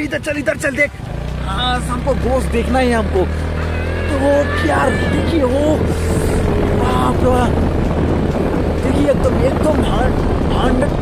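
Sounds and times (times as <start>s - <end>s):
people's voices: 0.0s - 7.8s.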